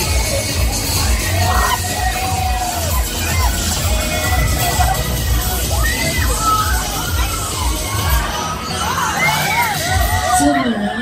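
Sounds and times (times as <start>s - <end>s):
music with thumping bass beat: 0.0s - 8.4s
people screaming and shouting: 0.0s - 11.0s.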